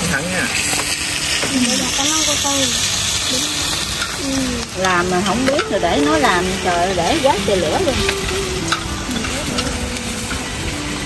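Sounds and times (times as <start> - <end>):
beef sizzling in a pan: 0.0 - 11.0
people talking: 1.5 - 8.4.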